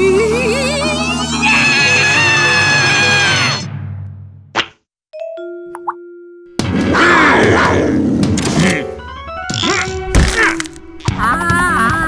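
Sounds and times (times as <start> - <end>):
busy cartoon music: 0.0 - 3.9.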